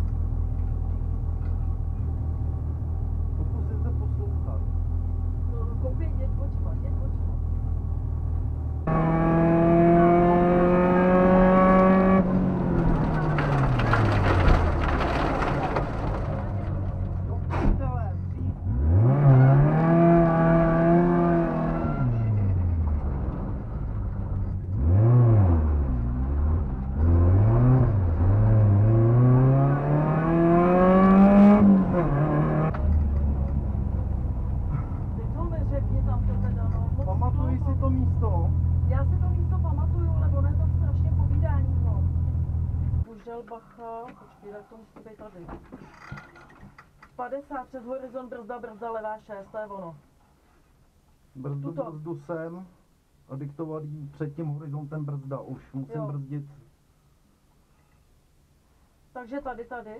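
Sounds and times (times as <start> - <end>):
rally car engine accelerating: 7.3 - 17.3, 18.4 - 43.1.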